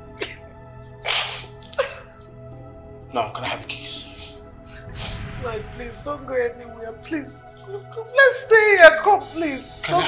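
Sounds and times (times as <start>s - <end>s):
background music: 0.0s - 10.0s
woman sobbing: 1.5s - 2.3s, 7.6s - 8.2s.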